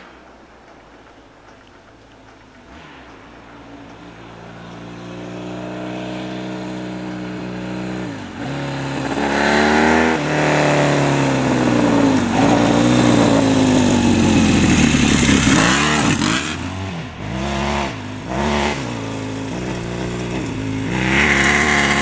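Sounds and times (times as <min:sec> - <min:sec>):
motorcycle accelerating past: 0:02.6 - 0:22.0.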